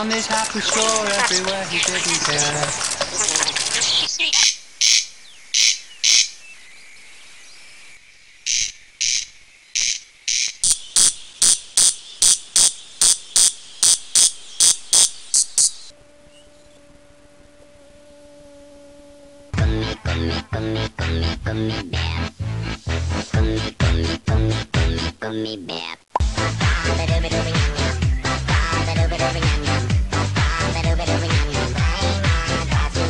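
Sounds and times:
insect chirping: 4.2 - 19.6
faint steady hum: 12.4 - 19.6.

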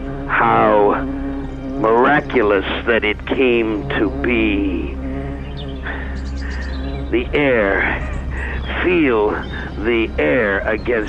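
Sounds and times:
high chirping: 0.0 - 11.0
steady musical drone: 0.0 - 11.0.

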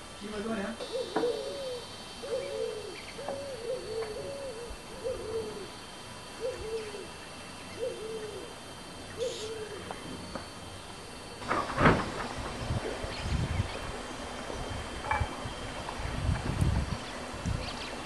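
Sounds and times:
dove cooing: 0.8 - 10.3.

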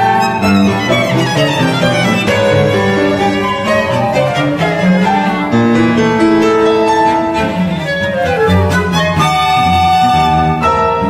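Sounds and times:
flute: 0.0 - 5.6, 7.6 - 11.0
cello: 0.0 - 11.0
violin: 0.0 - 11.0.

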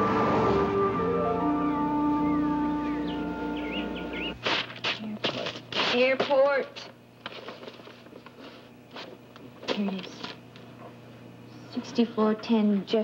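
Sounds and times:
music of held notes: 0.0 - 4.4.

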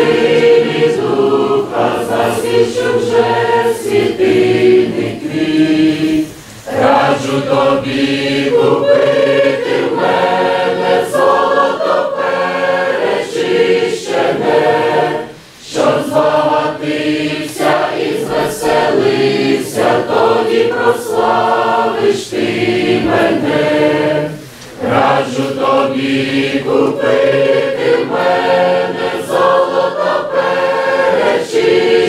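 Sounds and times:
church choir singing a hymn: 0.0 - 32.0.

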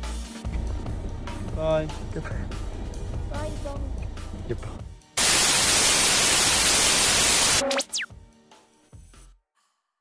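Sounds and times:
background music: 0.0 - 5.2, 7.8 - 9.4
falling electronic whine: 5.2 - 8.1
television static burst: 5.2 - 8.1.

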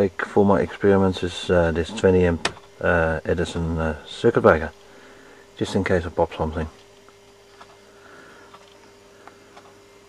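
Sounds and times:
faint steady hum: 0.0 - 10.0
thin constant tone: 0.0 - 10.0.

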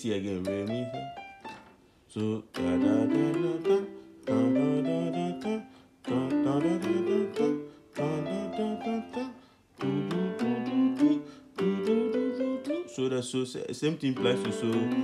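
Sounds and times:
piano scale exercise: 0.0 - 15.0.

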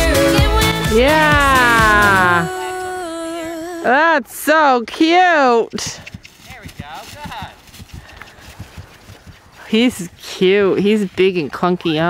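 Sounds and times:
hooves thudding on turf: 4.9 - 12.0.

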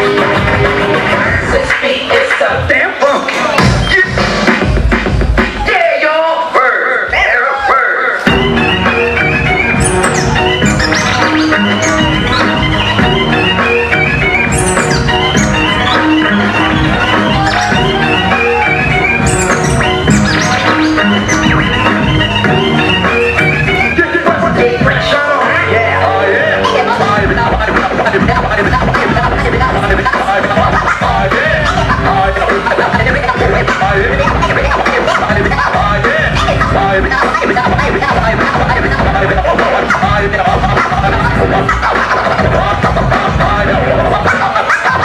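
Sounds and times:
music playing from vinyl: 0.0 - 5.6, 8.2 - 45.0
hip-hop beat with heavy bass: 0.0 - 5.7, 8.2 - 45.0
record scratches: 9.7 - 22.6.

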